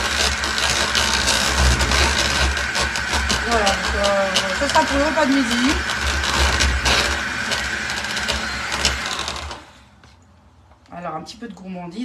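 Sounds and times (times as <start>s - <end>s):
mixer sharp clicks: 0.0s - 10.0s
electric mixer motor whine: 0.0s - 10.1s.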